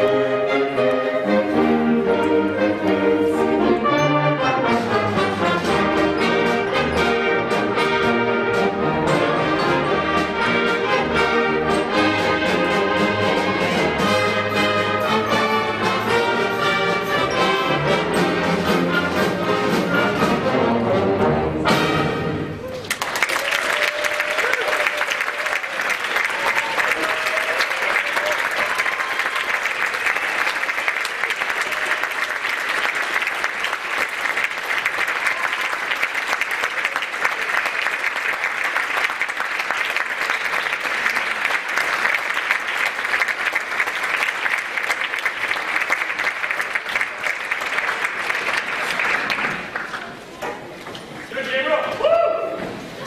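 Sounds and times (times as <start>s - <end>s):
audience applauding: 22.6s - 50.4s.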